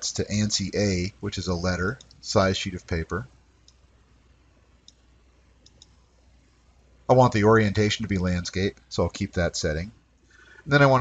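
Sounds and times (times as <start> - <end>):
computer mouse clicks: 2.0 - 2.2, 3.6 - 3.9, 4.8 - 6.0.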